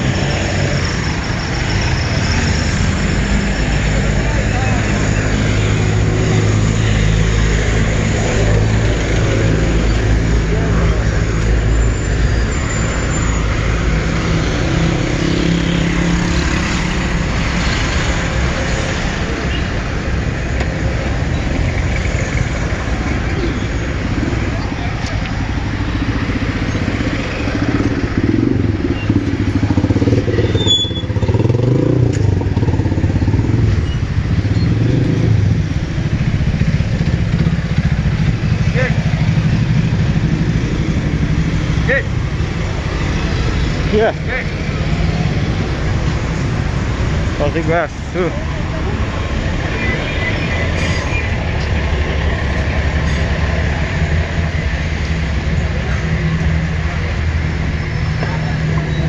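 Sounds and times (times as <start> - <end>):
vehicle engines running: 0.0 - 59.0.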